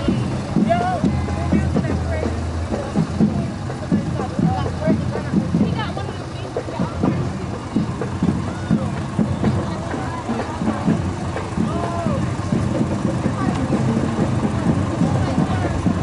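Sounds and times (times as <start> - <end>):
people's voices: 0.0 - 16.0
vehicle engine running low: 0.0 - 16.0.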